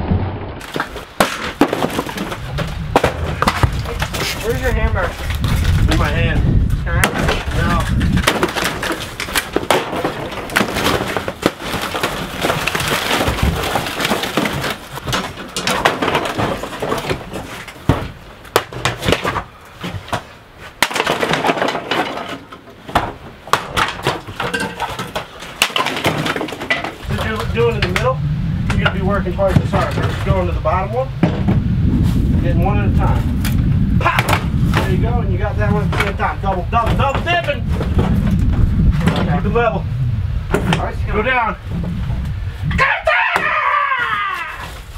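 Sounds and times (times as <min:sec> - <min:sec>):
wood paneling cracking: 0:00.6 - 0:31.5, 0:32.6 - 0:39.8
low steady rumble: 0:26.7 - 0:42.8.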